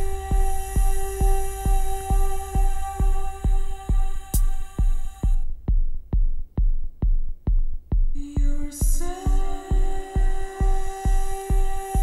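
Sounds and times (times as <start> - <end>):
high synth drone tones: 0.0 - 5.4
deep kick drum: 0.0 - 12.0.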